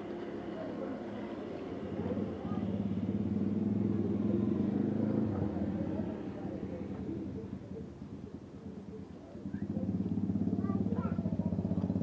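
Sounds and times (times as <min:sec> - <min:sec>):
vehicle engine passing: 0:01.8 - 0:07.5.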